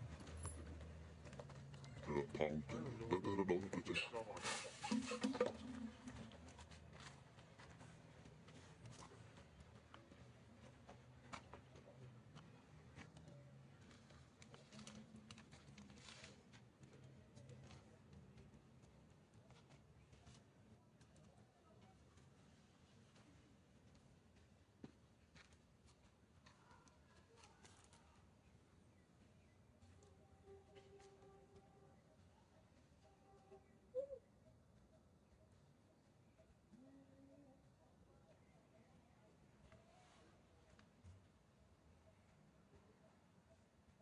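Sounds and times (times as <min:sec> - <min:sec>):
faint low hum: 0:00.0 - 0:44.0.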